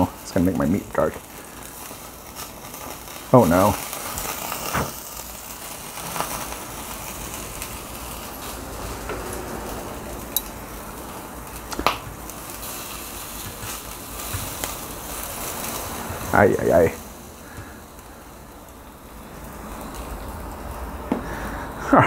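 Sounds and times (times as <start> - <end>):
fat crackling on coals: 0.0 - 22.0
meat sizzling on charcoal grill: 0.0 - 22.0
sharp pops: 11.7 - 12.1.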